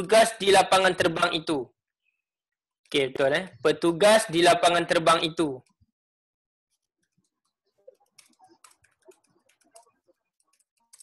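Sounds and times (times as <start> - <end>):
faint keyboard typing: 6.7 - 11.0.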